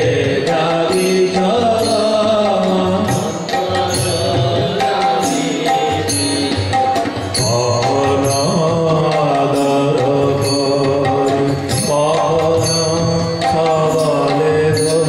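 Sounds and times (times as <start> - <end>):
harmonium: 0.0 - 15.0
man singing: 0.0 - 15.0.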